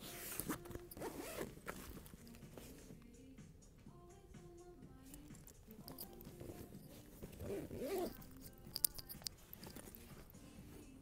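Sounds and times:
faint background music: 0.0s - 11.0s
camera rustling against fabric: 5.2s - 11.0s
sharp clicks: 8.4s - 9.8s.

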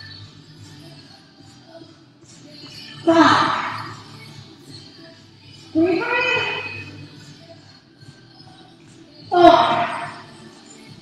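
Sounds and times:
faint background music: 0.0s - 11.0s
woman shouting: 3.1s - 3.9s, 5.8s - 6.8s, 9.3s - 10.2s.

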